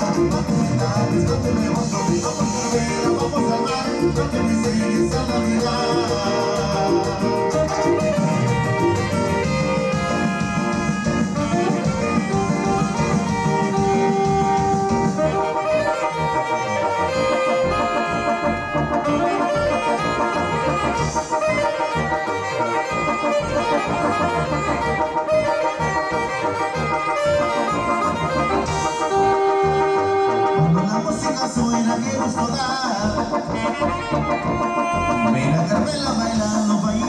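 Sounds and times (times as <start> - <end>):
live dance band playing: 0.0 - 37.0.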